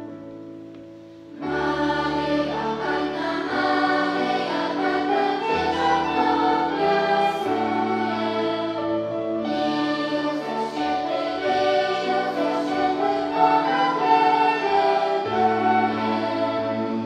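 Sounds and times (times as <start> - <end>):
children's choir singing a carol: 1.4 - 17.0
flutes: 4.4 - 17.0.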